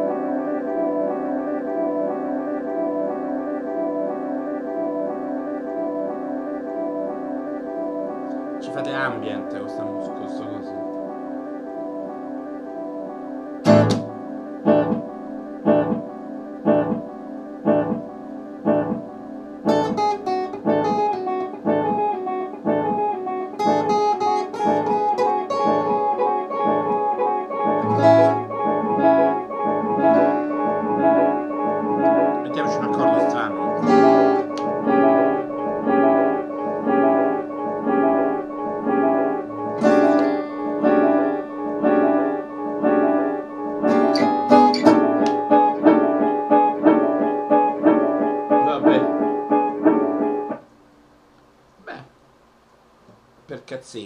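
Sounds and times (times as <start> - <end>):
fingerpicked acoustic guitar: 13.6 - 50.6.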